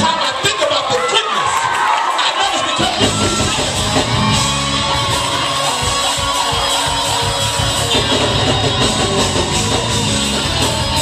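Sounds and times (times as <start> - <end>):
church band gospel groove: 0.0 - 11.0
choir and congregation shouting: 0.2 - 11.0.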